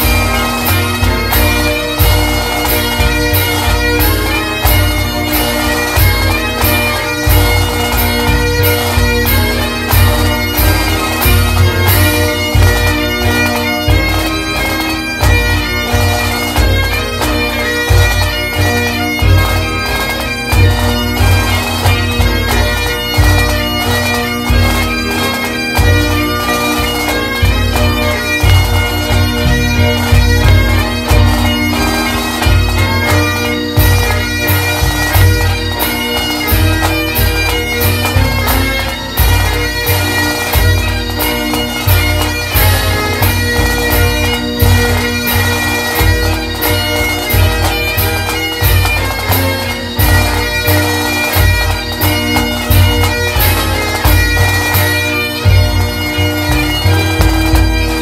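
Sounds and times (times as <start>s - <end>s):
bagpipes playing over drones: 0.0s - 58.0s.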